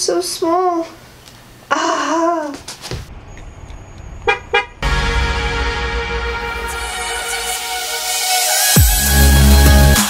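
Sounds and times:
car horn toots: 4.2 - 5.1
bass-heavy electronic music: 4.8 - 10.0.

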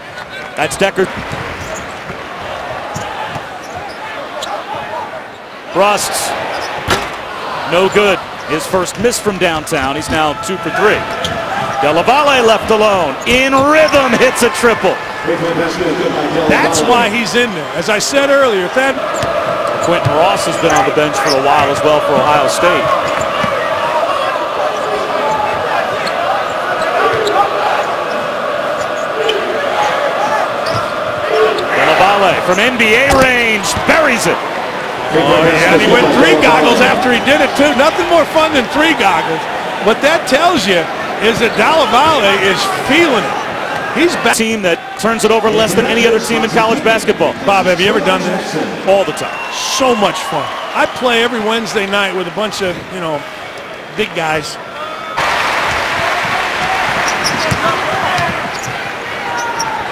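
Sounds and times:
arena crowd noise: 0.0 - 59.9.

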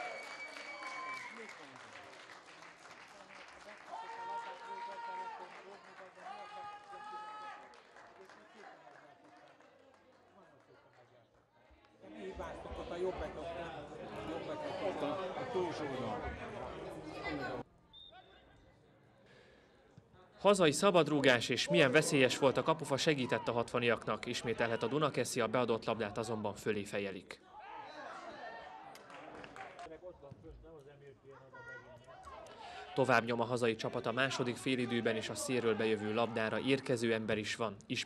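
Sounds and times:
light scattered clapping: 0.0 - 12.0, 28.9 - 29.9.

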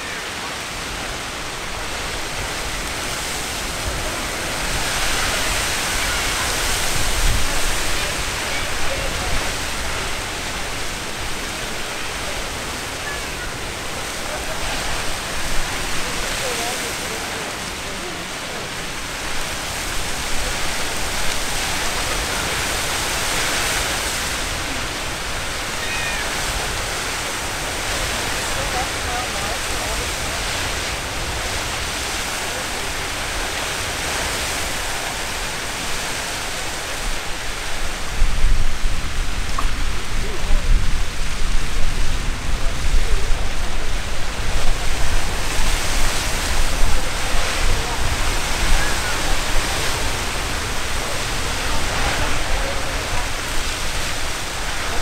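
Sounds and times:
geyser water and steam rushing: 0.0 - 55.0.

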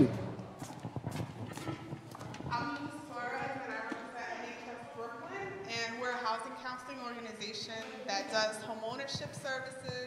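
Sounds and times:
footsteps on hard floor: 0.0 - 4.1.

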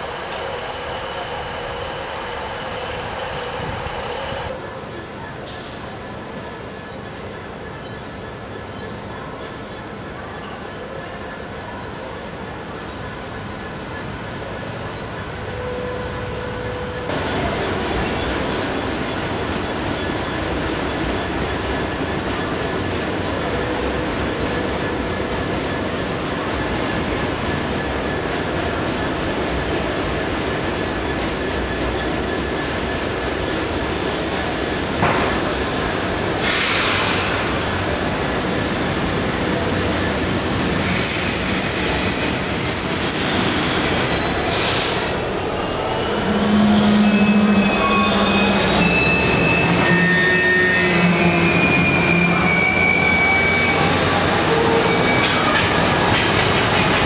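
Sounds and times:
freight train rumbling: 0.0 - 57.0
wheel squeals: 38.3 - 44.6, 45.6 - 55.8.

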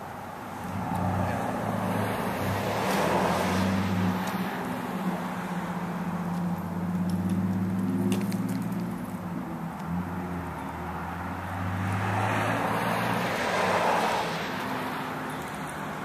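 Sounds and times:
vehicle engine humming: 0.0 - 16.0.

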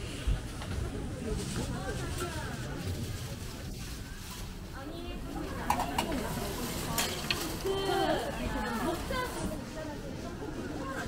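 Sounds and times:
chatter of passers-by: 0.0 - 11.0
metal utensils clinking: 5.6 - 7.7.

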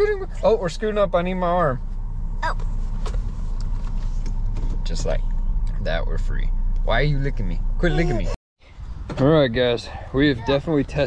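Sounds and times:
car engine rumble and road noise: 0.0 - 11.0.

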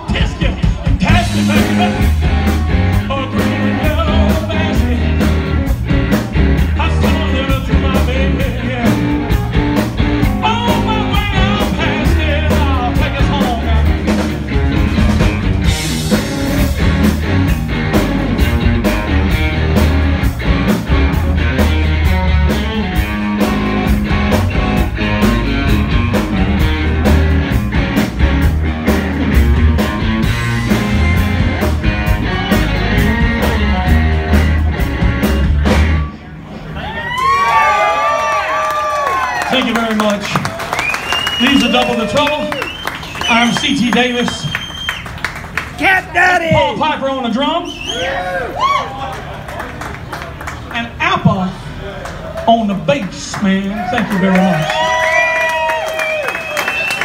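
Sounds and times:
steady drum beat: 0.0 - 36.1, 39.6 - 46.9
live rock band playing: 0.0 - 57.0
electric guitar bending notes: 0.8 - 36.3.

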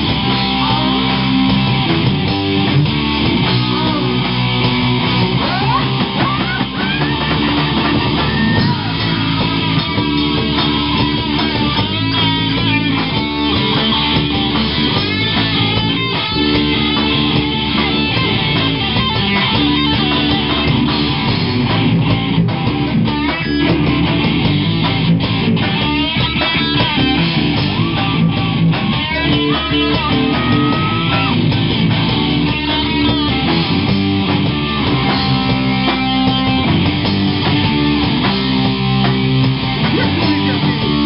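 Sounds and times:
live rock band playing: 0.0 - 41.0.

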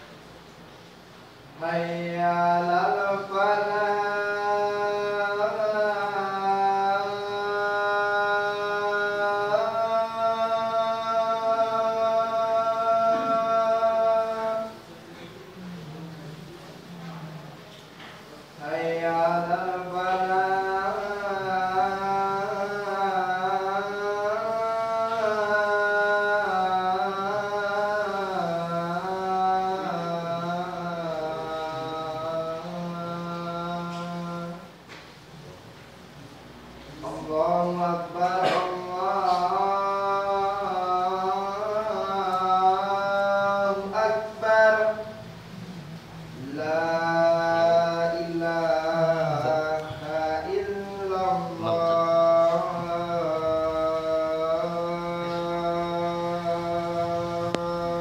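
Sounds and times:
man chanting call to prayer: 1.5 - 16.4, 18.1 - 34.8, 36.9 - 58.0.

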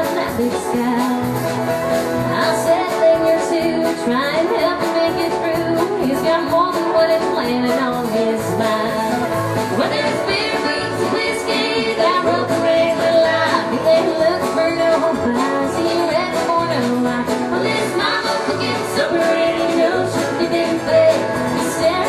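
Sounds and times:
acoustic guitar: 0.0 - 22.0
drums: 0.0 - 22.0
electric bass: 0.0 - 22.0
person singing: 2.2 - 22.0.

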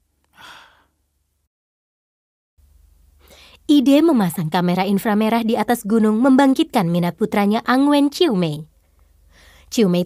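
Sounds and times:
person breathing out: 0.3 - 1.0.

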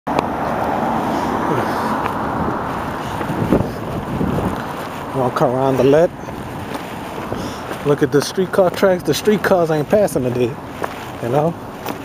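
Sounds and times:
car driving past: 0.1 - 7.8.

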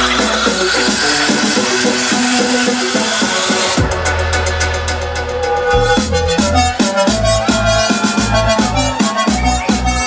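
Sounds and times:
dj mix with beat: 0.0 - 10.0
heavy bass: 1.6 - 10.0.

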